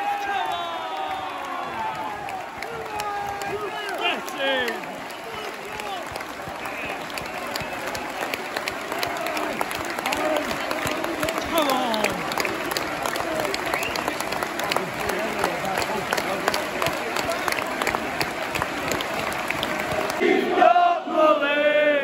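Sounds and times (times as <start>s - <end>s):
crowd applauding: 0.0s - 21.4s
fans shouting: 0.0s - 22.0s
sharp hand claps close by: 2.2s - 20.3s.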